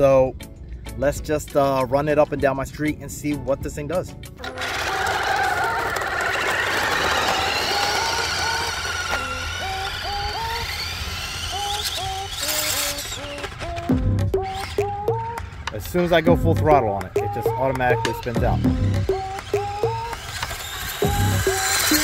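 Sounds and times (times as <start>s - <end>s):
rc car electric motor whine: 4.4s - 16.3s, 17.2s - 22.0s
background music melody: 6.5s - 22.0s.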